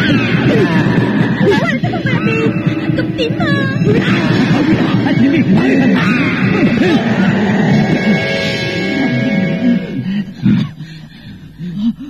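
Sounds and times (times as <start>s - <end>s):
tense background music: 0.0s - 11.6s
frightened overlapping voices: 0.0s - 12.0s
woman whimpering: 1.3s - 4.0s.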